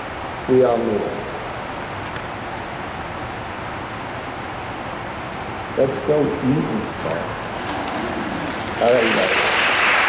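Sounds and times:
large hall room rumble and hiss: 0.0s - 10.0s.

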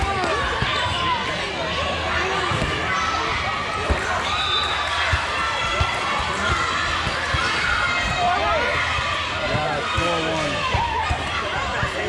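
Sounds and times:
chatter of many people: 0.0s - 12.0s.

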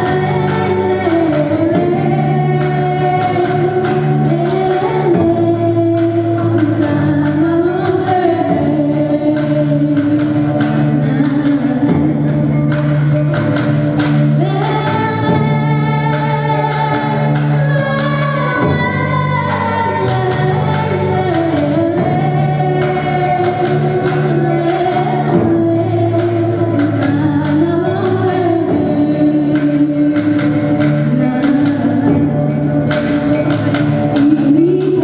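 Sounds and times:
band accompanying: 0.0s - 35.0s
woman singing into microphone: 0.0s - 35.0s.

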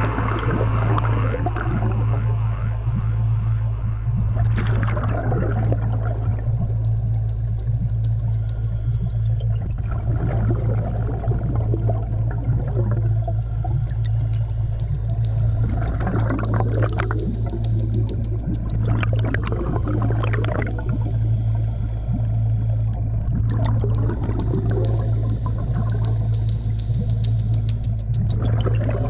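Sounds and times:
low underwater hum: 0.0s - 29.0s
regulator exhalation bubbling: 18.7s - 21.2s.

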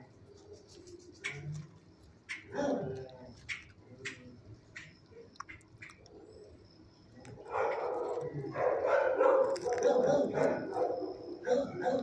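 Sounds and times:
dogs barking: 2.3s - 3.7s, 7.4s - 12.0s.

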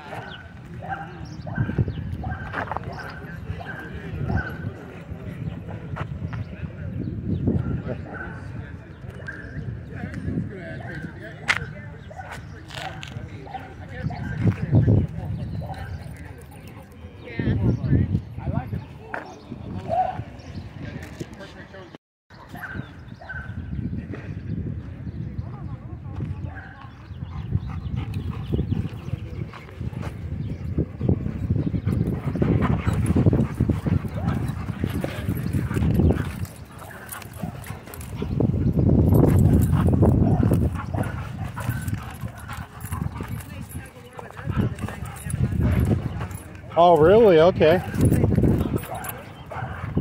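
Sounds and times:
dogs barking and growling: 31.3s - 46.8s, 47.8s - 50.0s.

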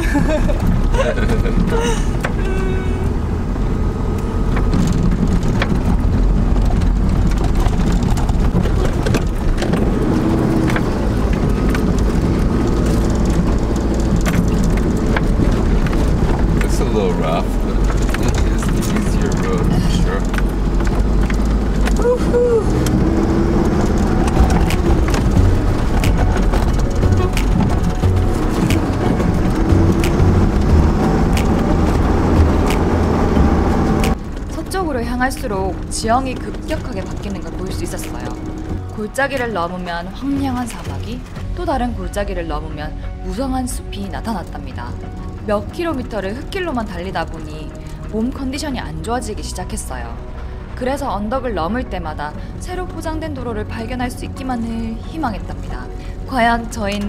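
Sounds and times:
knocks and rattles from bumps: 0.0s - 3.4s, 4.0s - 41.6s
engine and tyre rumble: 0.0s - 57.0s.

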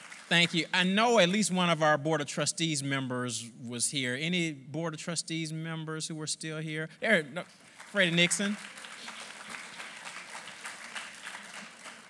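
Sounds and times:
audience applauding: 0.0s - 0.7s, 7.4s - 12.0s.

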